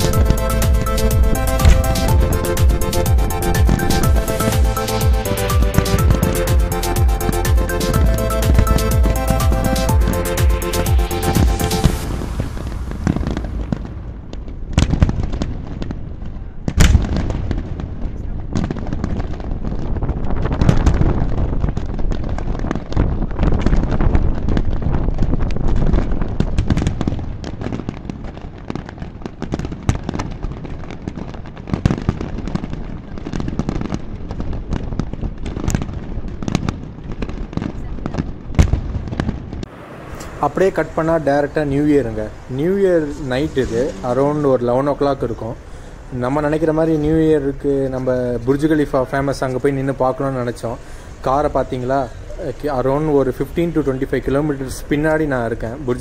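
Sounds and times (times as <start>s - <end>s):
fireworks bangs and crackling: 0.0s - 56.0s.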